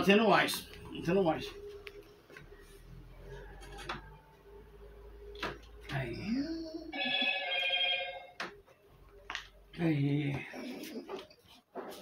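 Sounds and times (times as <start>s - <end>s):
electronic ringing tone: 6.9s - 8.4s.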